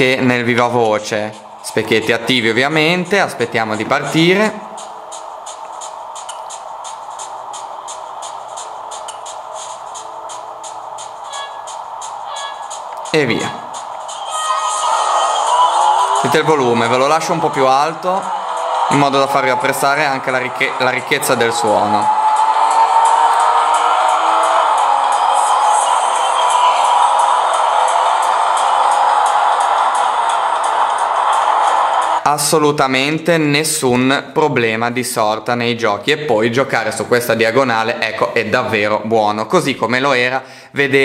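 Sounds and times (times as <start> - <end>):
racing game music: 4.2 - 32.2
game music with ticking beat: 4.8 - 14.3.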